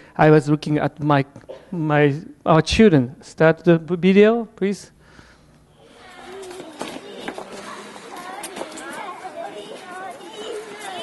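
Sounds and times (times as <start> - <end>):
children chattering and calling: 5.7 - 11.0.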